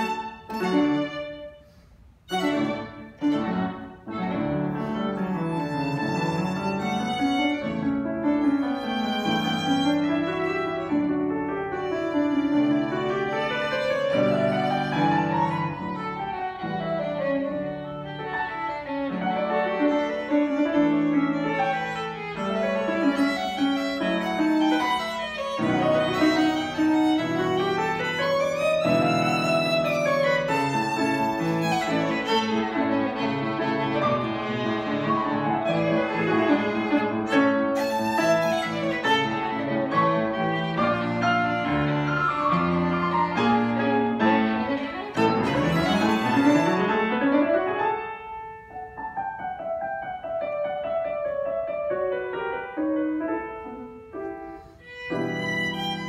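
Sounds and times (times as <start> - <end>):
piano accompaniment: 0.0 - 56.0
violin melody: 0.0 - 56.0.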